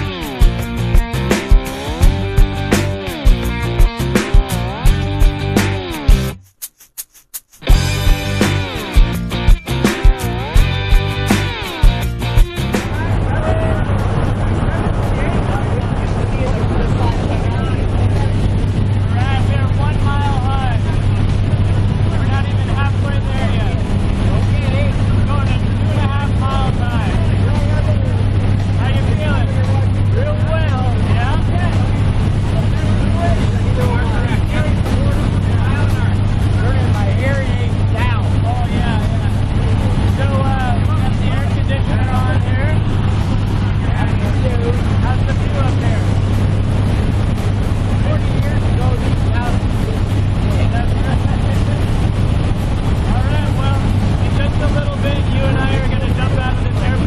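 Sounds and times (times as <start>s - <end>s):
propeller plane engine drone: 0.0s - 6.2s, 7.6s - 57.0s
people talking: 9.7s - 57.0s.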